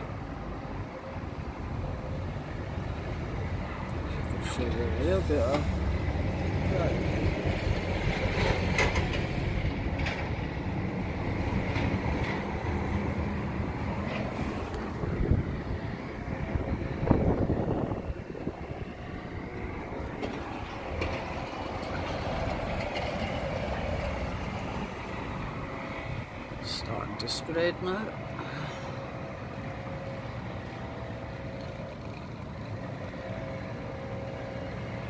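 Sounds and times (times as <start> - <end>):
low rumble of outdoor noise: 0.0 - 35.0.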